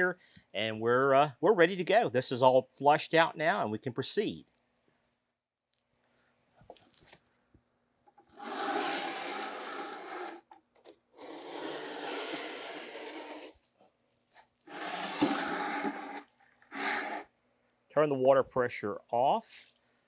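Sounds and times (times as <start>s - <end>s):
spray gun spraying water into bucket: 14.7s - 17.2s.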